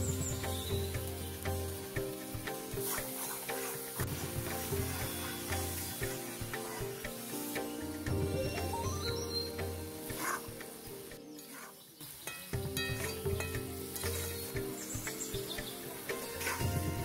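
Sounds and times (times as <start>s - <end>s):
background music: 0.0s - 17.0s
curry sizzling: 0.0s - 17.0s.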